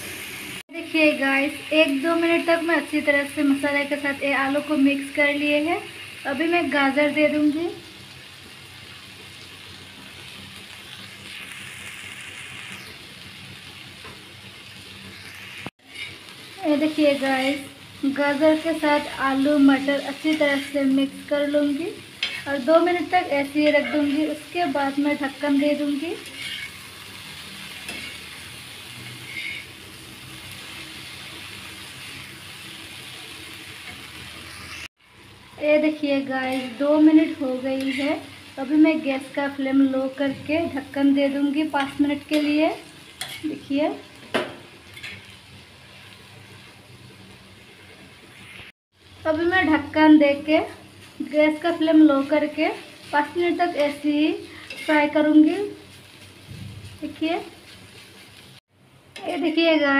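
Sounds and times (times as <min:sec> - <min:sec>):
vegetables sizzling in oil: 0:00.0 - 0:59.9
spatula stirring on iron: 0:15.8 - 0:16.3, 0:22.2 - 0:22.5, 0:26.2 - 0:26.8, 0:27.8 - 0:28.3, 0:29.1 - 0:29.7, 0:41.8 - 0:43.5, 0:53.8 - 0:55.2.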